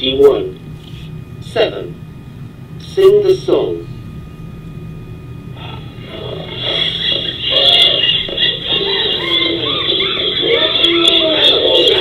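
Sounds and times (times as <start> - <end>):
children's song with gliding voices: 5.6 - 12.0.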